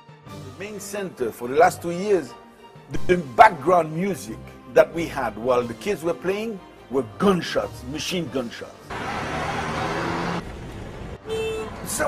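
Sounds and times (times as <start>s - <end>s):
street traffic noise: 8.9s - 12.0s
vehicle horn toot: 11.2s - 12.0s.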